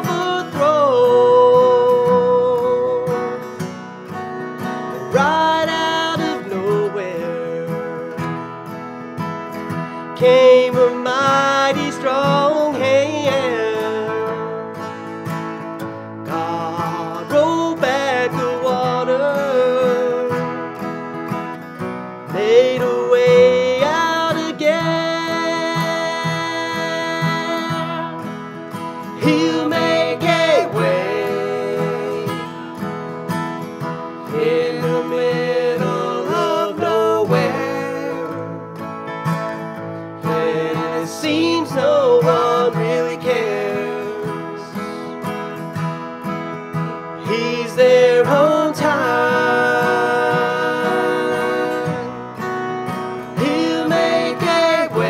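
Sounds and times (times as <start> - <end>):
acoustic guitars strummed: 0.0 - 55.0
men singing gospel song: 16.3 - 20.2, 22.3 - 28.2, 29.2 - 32.8, 34.2 - 38.6, 40.2 - 45.0, 47.2 - 52.5, 53.3 - 55.0.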